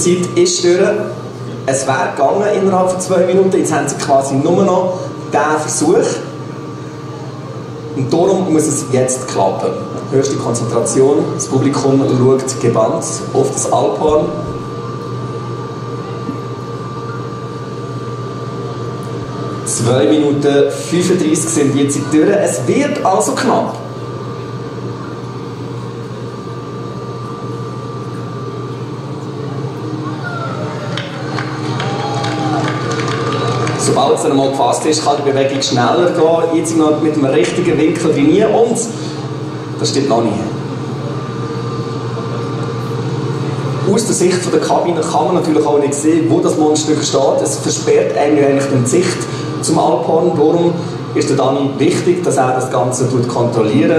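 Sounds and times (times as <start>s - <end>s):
thin steady whine: 0.0s - 53.9s
excavator engine running: 7.5s - 20.4s.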